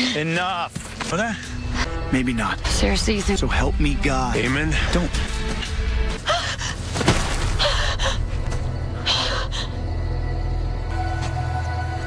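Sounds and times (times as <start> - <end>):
dark background music: 0.2 - 12.0.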